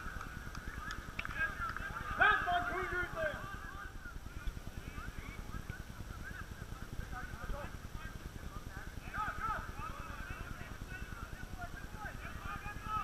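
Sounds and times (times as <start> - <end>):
low flickering microphone rumble: 0.0 - 13.0
distant players shouting: 0.1 - 4.1, 9.0 - 13.0.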